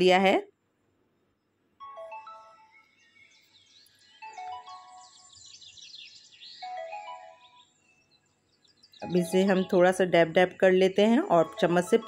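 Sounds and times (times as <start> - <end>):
high chirping like birdsong: 1.4 - 12.0
soft melodic music: 1.8 - 8.1, 9.0 - 12.0.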